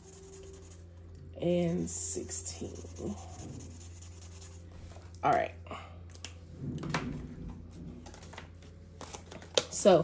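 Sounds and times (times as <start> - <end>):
marker pen scratching on paper: 0.0 - 0.8, 1.5 - 4.6
low background hum: 0.0 - 10.0.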